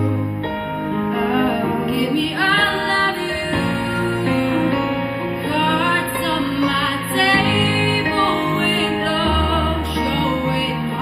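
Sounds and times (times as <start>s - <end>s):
instrumental backing music: 0.0s - 11.0s
women singing pop duet: 1.1s - 11.0s.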